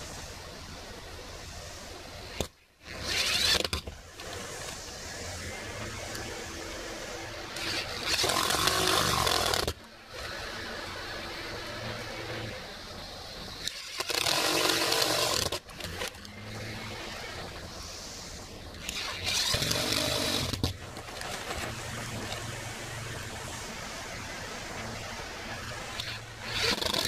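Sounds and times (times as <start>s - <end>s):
power drill running: 3.0s - 3.8s, 7.6s - 9.7s, 13.7s - 16.1s, 18.8s - 20.7s, 26.0s - 27.0s.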